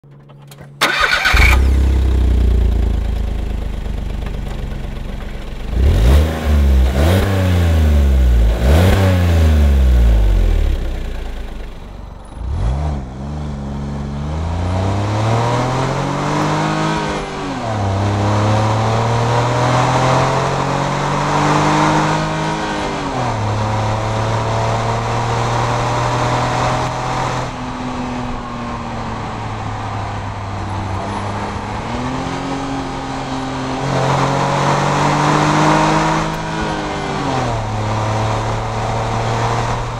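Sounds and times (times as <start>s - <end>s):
car engine revving: 0.1s - 39.9s.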